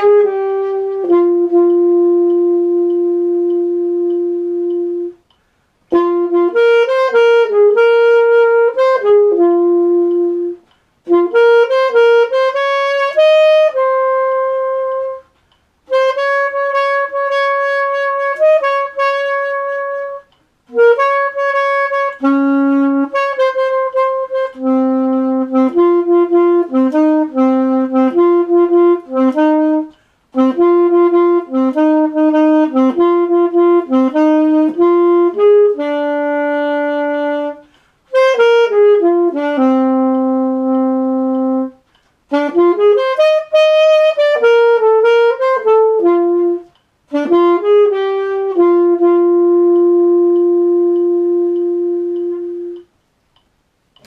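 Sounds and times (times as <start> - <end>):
alto saxophone jazz ballad: 0.0 - 52.9.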